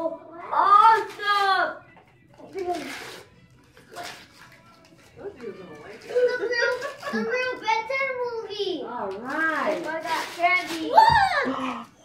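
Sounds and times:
paper rustling: 0:02.3 - 0:07.6, 0:09.2 - 0:11.4.

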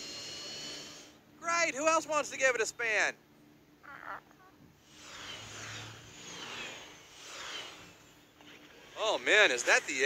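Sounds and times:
cartoon vehicles whooshing past: 0:05.0 - 0:08.2.

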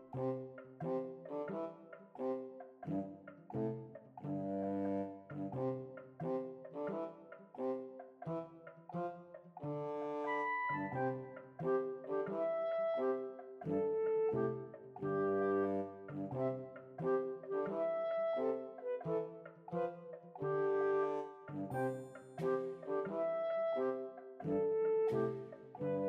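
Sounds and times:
bouncy instrumental music: 0:00.0 - 0:04.2, 0:05.0 - 0:26.0.

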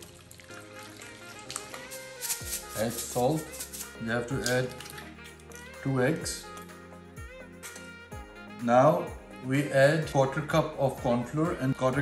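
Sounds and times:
spoon mixing wet marinade: 0:00.0 - 0:06.6
background music: 0:00.0 - 0:12.0.

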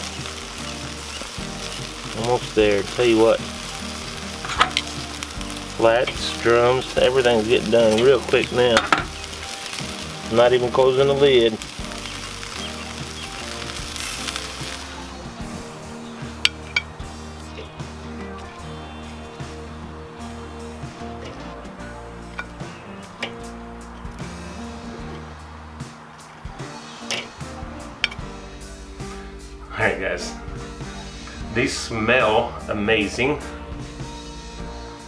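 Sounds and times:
background music with bass line: 0:00.0 - 0:35.0
chicken wings sizzling on grill: 0:00.0 - 0:35.0
tongs clicking on grill grate: 0:28.0 - 0:28.3.

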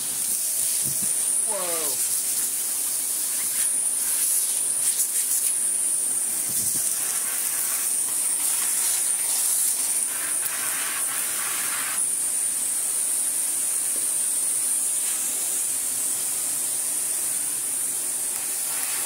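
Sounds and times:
vacuum cleaner running: 0:00.0 - 0:04.8, 0:05.6 - 0:19.0.

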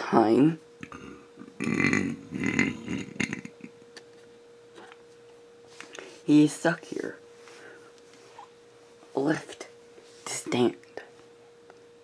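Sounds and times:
faint steady hum: 0:00.0 - 0:12.0
rough throaty vocal noises: 0:00.8 - 0:03.7.

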